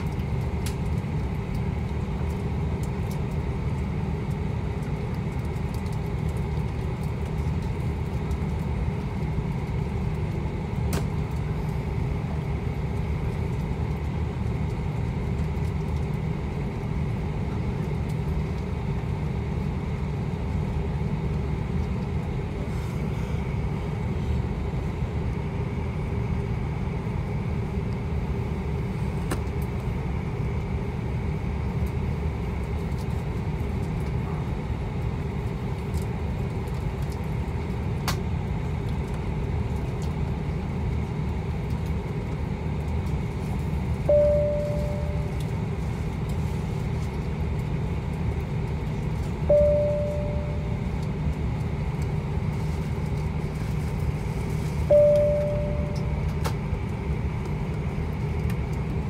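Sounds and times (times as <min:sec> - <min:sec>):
airplane cabin low rumble: 0:00.0 - 0:59.0
jet engine whine: 0:00.0 - 0:59.0.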